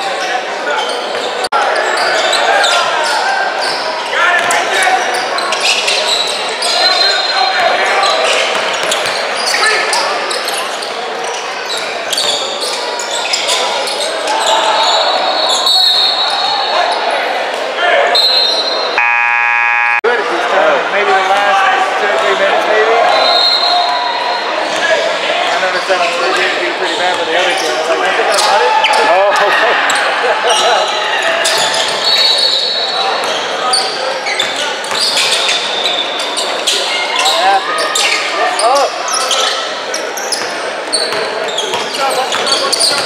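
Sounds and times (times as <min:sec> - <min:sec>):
people calling out: 0:17.8 - 0:24.2
buzzer: 0:19.0 - 0:20.1.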